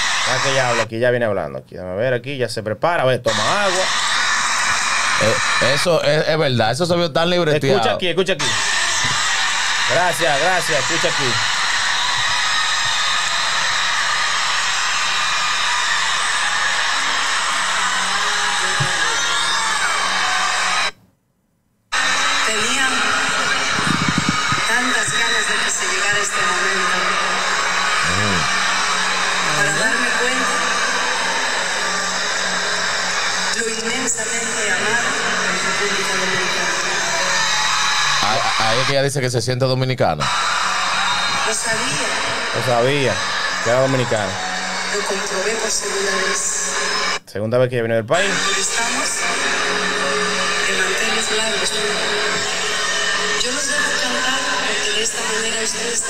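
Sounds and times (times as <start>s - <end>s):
concert crowd noise: 0.0s - 0.9s, 3.3s - 6.5s, 7.5s - 21.0s, 21.9s - 39.3s, 40.2s - 47.2s, 48.1s - 56.0s
concert music: 21.9s - 37.8s, 40.3s - 47.2s, 48.2s - 56.0s
indistinct voices: 28.0s - 32.8s.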